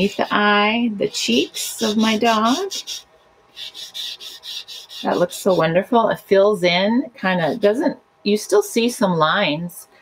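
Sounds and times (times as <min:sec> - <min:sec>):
paper towel rubbing on paper: 0:00.0 - 0:05.8.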